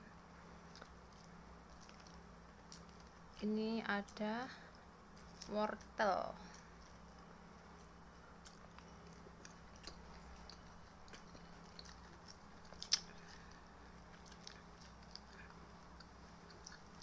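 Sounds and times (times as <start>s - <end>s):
chewing crunchy vegetables: 0.6s - 4.2s, 5.1s - 17.0s.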